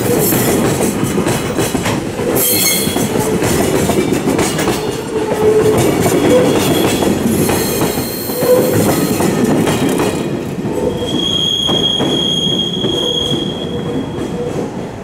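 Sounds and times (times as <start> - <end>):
train wheels clattering over rail joints: 0.0 - 15.0
high metallic squeal: 2.4 - 3.2, 10.8 - 14.1.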